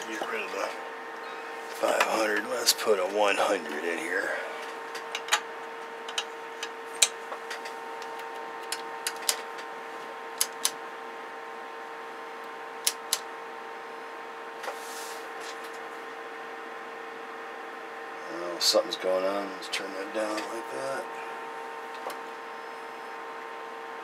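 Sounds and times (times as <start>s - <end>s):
radio control clicks: 10.4s - 10.8s, 12.8s - 13.3s.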